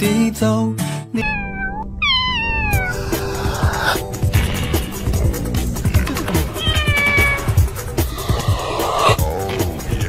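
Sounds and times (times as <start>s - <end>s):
kitten meowing: 1.2s - 3.8s, 6.6s - 7.6s
background music with beat: 3.0s - 10.0s.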